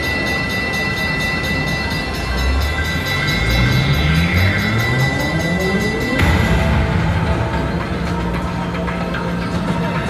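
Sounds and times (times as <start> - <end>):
slot machine alert tone: 0.0 - 7.1.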